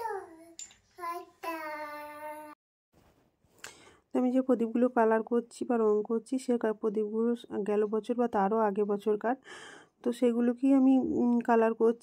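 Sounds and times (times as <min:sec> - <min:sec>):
young child singing: 0:00.0 - 0:02.6.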